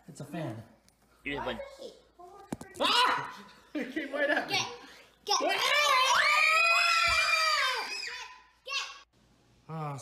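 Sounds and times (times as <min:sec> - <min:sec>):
child screaming: 0:05.5 - 0:09.0.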